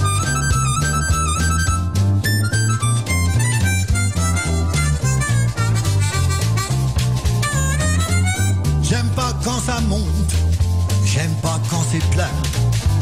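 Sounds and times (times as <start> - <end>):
harmonica lead with bent notes: 0.0 - 9.6
drums: 0.0 - 13.0
walking bass line: 0.0 - 13.0.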